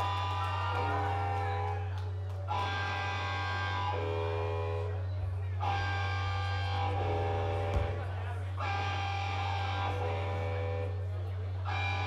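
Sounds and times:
steady low drone: 0.0 - 12.0.

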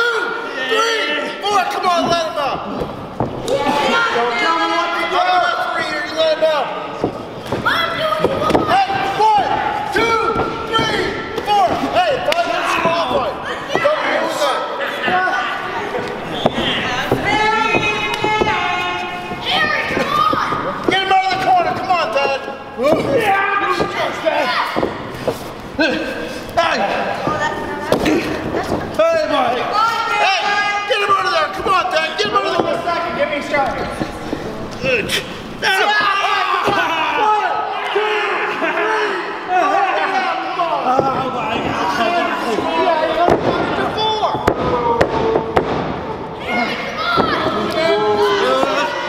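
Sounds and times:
people shouting: 0.0 - 6.6, 7.4 - 33.8, 34.8 - 49.0.

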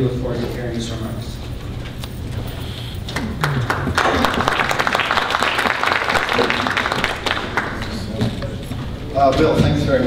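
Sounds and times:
audience applause: 3.2 - 8.2.

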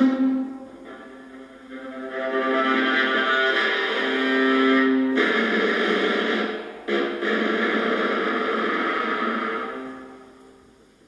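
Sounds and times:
bowed viola: 0.0 - 5.3.

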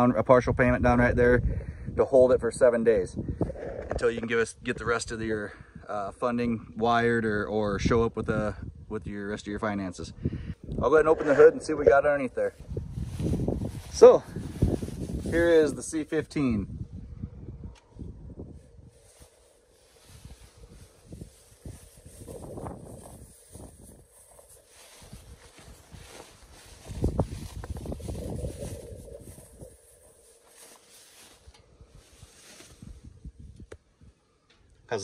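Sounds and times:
wind buffeting microphone: 0.0 - 5.9, 6.6 - 34.2.

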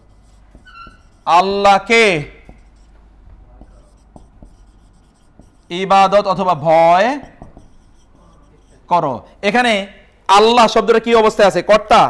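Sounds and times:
marker pen writing on whiteboard: 0.0 - 10.6.

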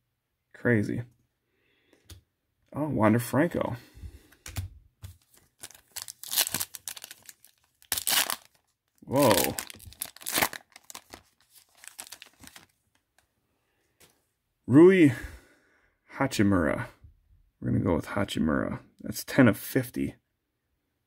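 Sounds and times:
foil wrapper tearing and crinkling: 5.2 - 12.8.

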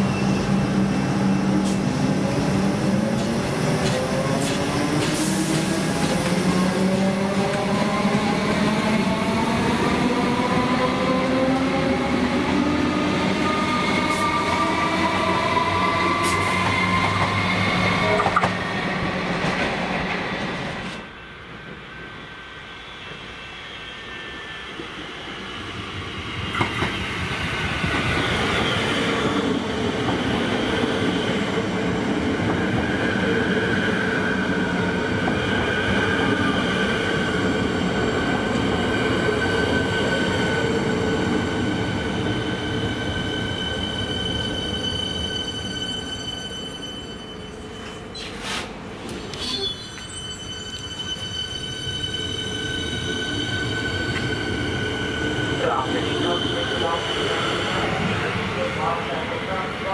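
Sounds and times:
electric train whine: 0.0 - 59.9
train rail noise: 0.0 - 59.9
traction equipment high whining: 49.0 - 58.6.

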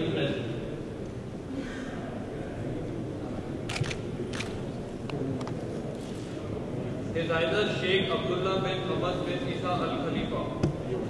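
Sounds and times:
low background noise: 0.0 - 11.0
camera shutters clicking: 3.7 - 4.6.

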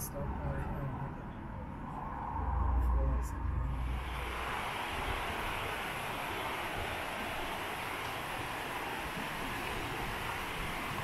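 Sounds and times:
river water rushing: 3.8 - 11.0.

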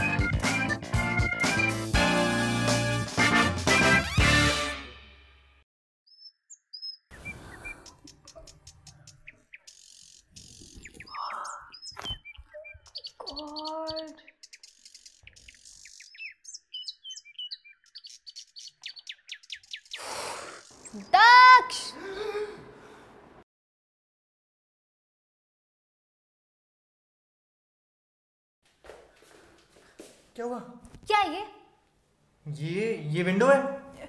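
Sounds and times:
birds chirping: 6.1 - 22.2.

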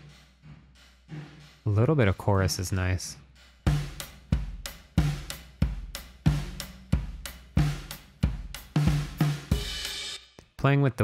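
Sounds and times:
drum kit playing a groove: 0.0 - 10.4.

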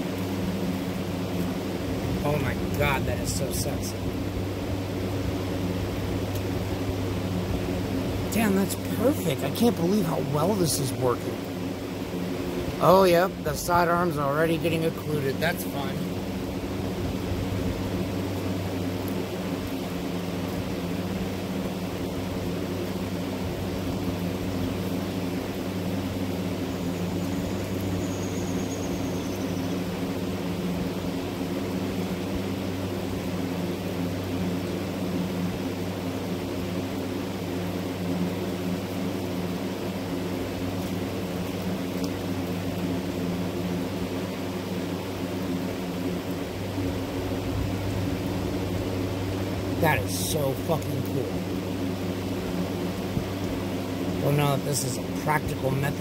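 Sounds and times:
steady mechanical hum: 0.0 - 56.0.

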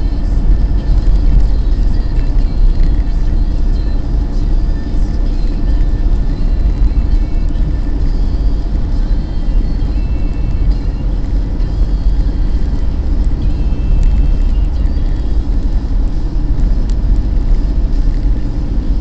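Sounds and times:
car engine and road rumble: 0.0 - 19.0.

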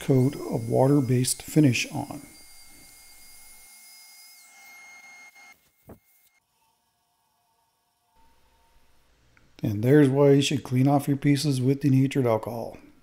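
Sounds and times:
wood lathe whine: 0.0 - 8.8.

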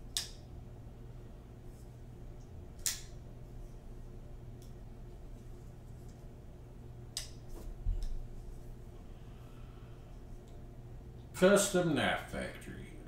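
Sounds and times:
knife blade metallic clicks: 2.8 - 3.1.

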